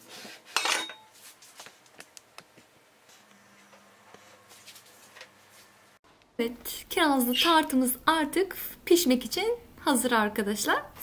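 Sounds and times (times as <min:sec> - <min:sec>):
dishes clinking: 0:00.5 - 0:01.2.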